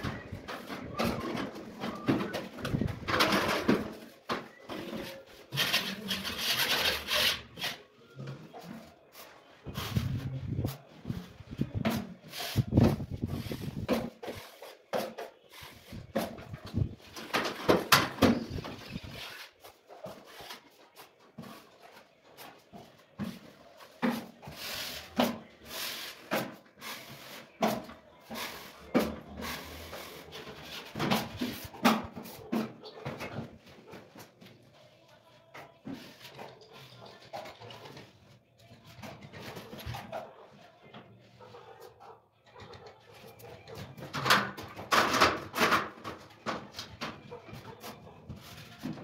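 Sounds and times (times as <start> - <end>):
trowel scraping drywall: 5.1 - 7.8.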